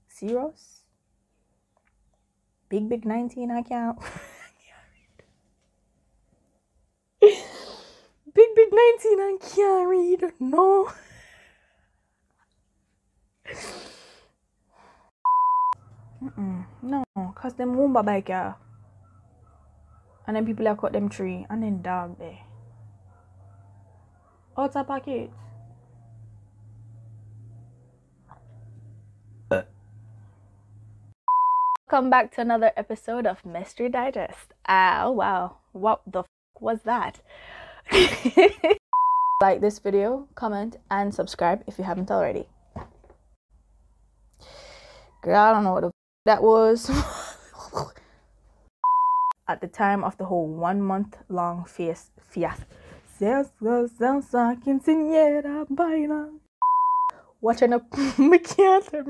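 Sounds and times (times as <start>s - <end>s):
electronic beep: 15.3s - 15.8s, 31.3s - 31.8s, 39.0s - 39.4s, 48.8s - 49.4s, 56.6s - 57.1s.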